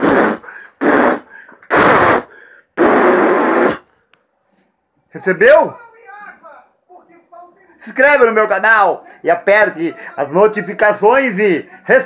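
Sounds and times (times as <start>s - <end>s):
man blowing into microphone: 0.0s - 4.7s.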